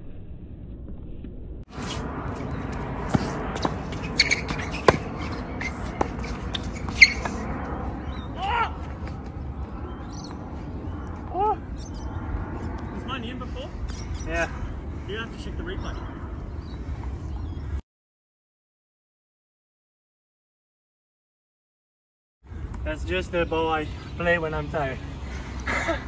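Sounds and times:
rising-and-falling calls: 3.9 - 9.0.

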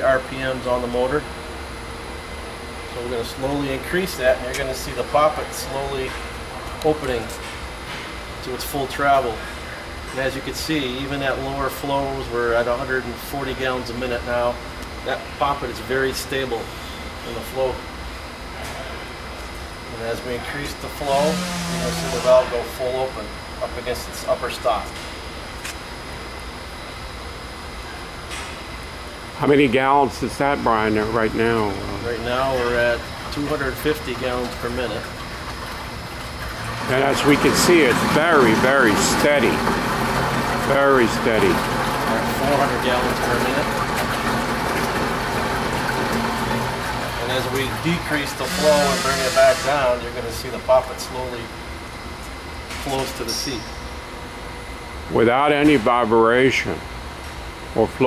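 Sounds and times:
water rushing through piping: 21.0 - 23.0, 32.9 - 50.2
faint steady high tone: 48.4 - 49.8.

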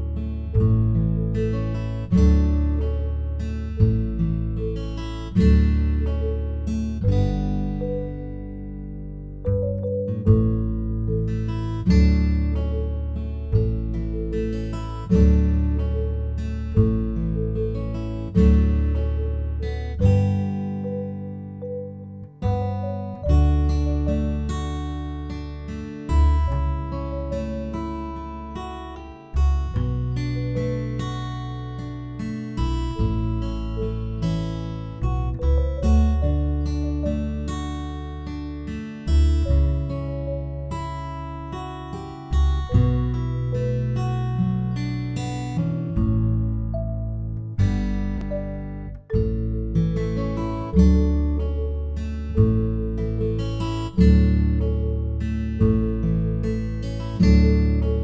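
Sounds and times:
acoustic guitar chords: 0.0 - 58.0.

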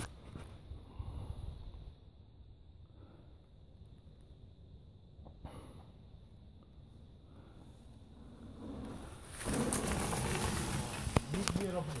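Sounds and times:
bike tyres rolling on dirt trail: 6.5 - 12.0.

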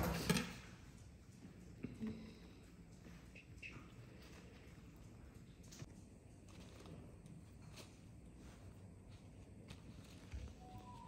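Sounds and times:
faint handling sounds: 0.8 - 11.0.

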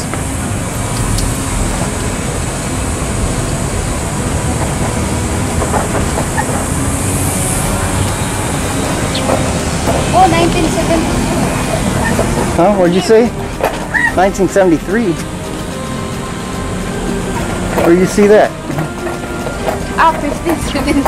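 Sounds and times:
low rumbling noise: 0.0 - 21.0.

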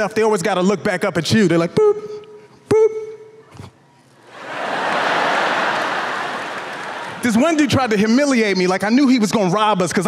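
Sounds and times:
studio audience applauding: 4.3 - 8.2.

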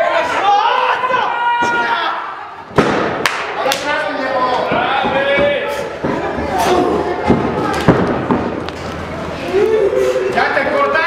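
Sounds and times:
sharp slaps: 2.7 - 4.7.

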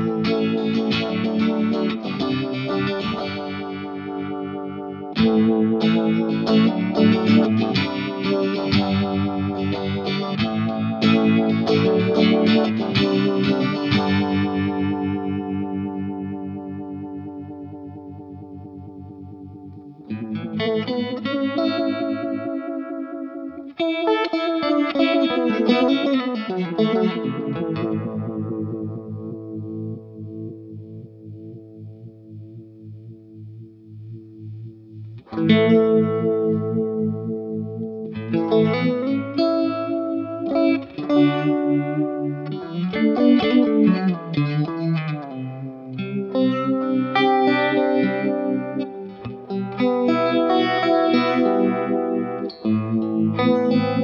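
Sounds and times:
electric guitar chords with vibe effect: 0.0 - 54.0.

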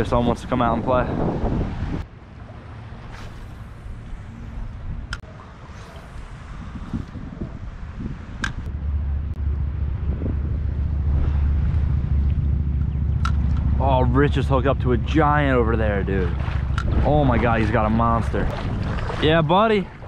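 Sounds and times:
wind buffeting microphone: 0.0 - 20.0
water lapping: 2.0 - 8.4, 11.1 - 20.0.

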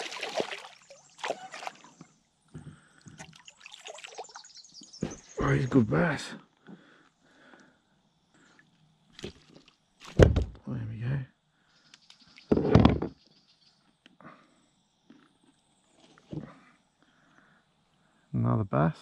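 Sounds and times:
muffled man's voice: 5.4 - 6.4, 10.6 - 11.3, 18.3 - 19.0.

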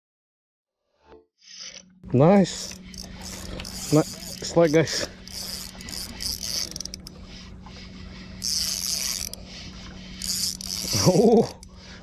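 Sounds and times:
fishing reel whirring and clicking: 1.4 - 12.0.

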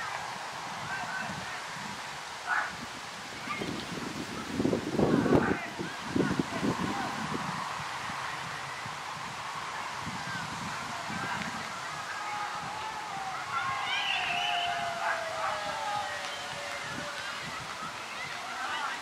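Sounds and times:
outdoor background noise: 0.0 - 19.0
distant players shouting: 10.7 - 19.0.

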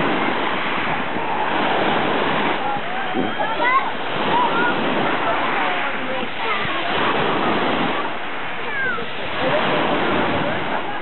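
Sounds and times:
small waves lapping: 0.0 - 11.0.

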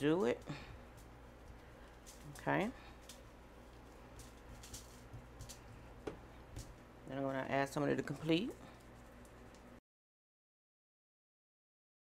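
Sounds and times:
hands brushing foil: 0.0 - 6.9
gloved hands rubbing meat: 0.1 - 7.0.

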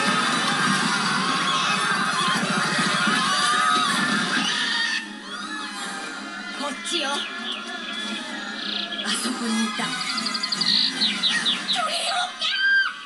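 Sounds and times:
film soundtrack music from television: 0.0 - 13.0.

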